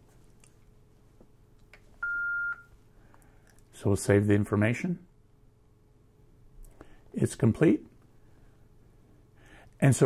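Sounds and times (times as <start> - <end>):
high beep from radio: 2.0 - 2.7.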